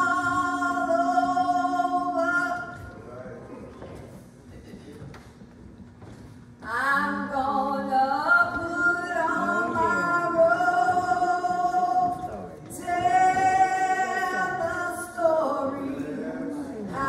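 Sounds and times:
unaccompanied church singing: 0:00.0 - 0:03.0, 0:07.4 - 0:17.0.

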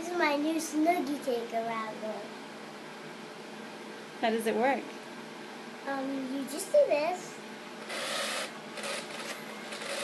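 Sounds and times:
toy power drill whirring: 0:07.8 - 0:10.0.

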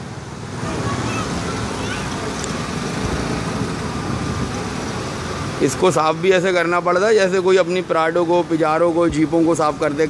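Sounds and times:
street background hiss and rumble: 0:00.0 - 0:10.0.

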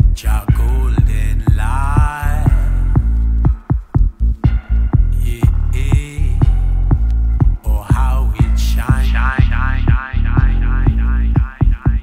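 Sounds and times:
deep bassline: 0:00.0 - 0:12.0
drum hits: 0:00.0 - 0:12.0
instrumental reggae dub: 0:00.0 - 0:12.0.

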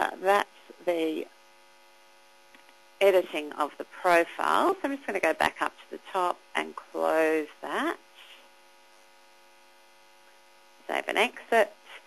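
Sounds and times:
speech: 0:00.0 - 0:01.3, 0:03.0 - 0:08.4, 0:10.9 - 0:12.0
electrical mains hum: 0:00.0 - 0:12.0.

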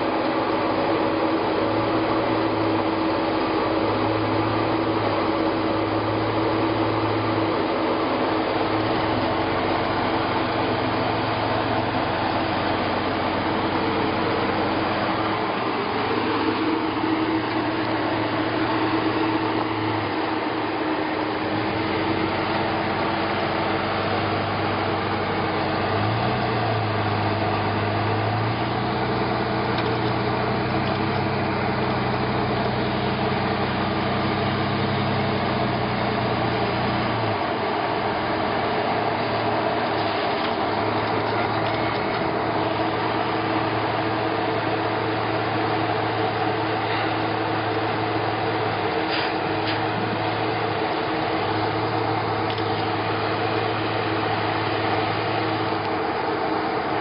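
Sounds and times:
engine running at low revs: 0:00.0 - 0:57.0.

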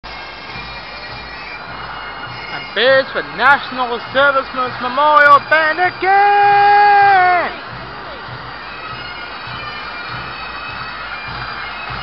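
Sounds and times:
bagpipes: 0:00.1 - 0:12.0.

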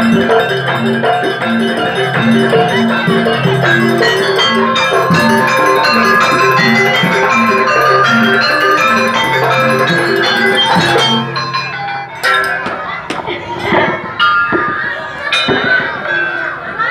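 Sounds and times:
sharp metallic clinks: 0:00.0 - 0:16.6
gamelan drums and gongs: 0:00.0 - 0:16.9.

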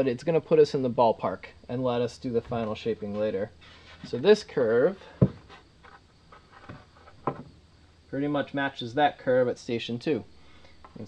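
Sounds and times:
wood tapping and rubbing: 0:02.5 - 0:07.6
wooden knock: 0:05.2 - 0:05.5, 0:06.6 - 0:07.5.

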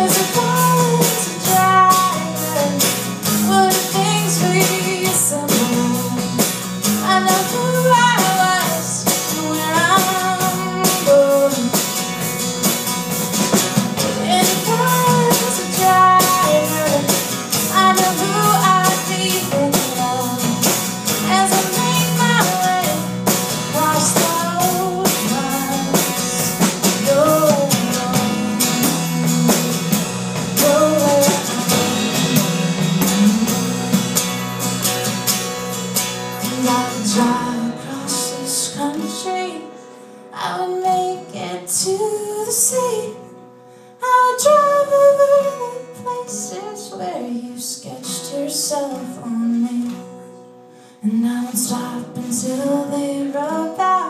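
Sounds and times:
person singing: 0:00.0 - 0:11.9, 0:14.0 - 0:34.0, 0:36.4 - 0:43.3, 0:51.0 - 0:54.0
acoustic guitar strumming: 0:00.0 - 0:54.0
electric bass line: 0:24.7 - 0:36.0.

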